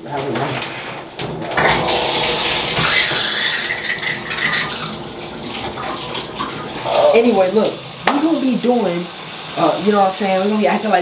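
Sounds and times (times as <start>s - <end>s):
water running into tub: 1.3s - 11.0s.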